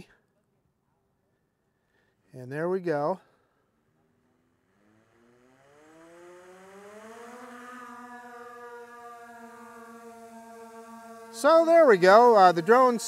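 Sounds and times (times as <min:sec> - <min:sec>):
drone propellers humming: 0:03.5 - 0:13.0.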